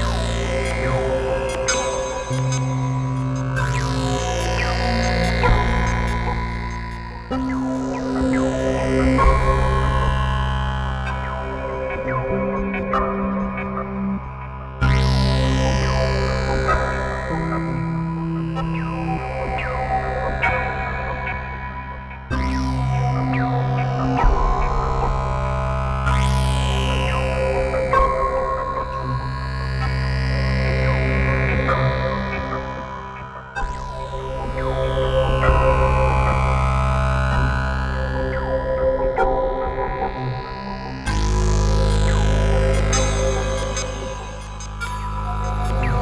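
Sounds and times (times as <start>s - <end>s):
falling pitch sweeps: 0.0s - 10.3s, 37.3s - 46.0s
high gliding synth tone: 0.0s - 10.4s, 39.2s - 46.0s
synthesizer drone music: 0.0s - 46.0s.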